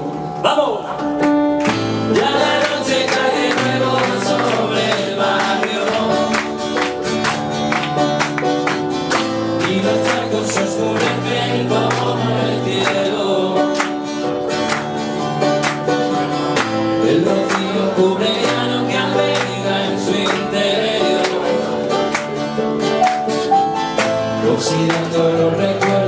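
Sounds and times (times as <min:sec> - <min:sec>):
acoustic guitar strumming: 0:00.0 - 0:26.0
man singing: 0:09.6 - 0:13.8, 0:17.0 - 0:21.8, 0:24.3 - 0:26.0.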